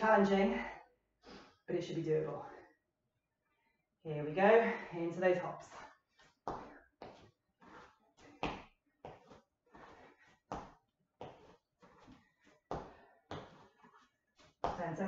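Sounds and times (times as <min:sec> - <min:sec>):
feet thudding on hard floor: 0:06.5 - 0:14.0.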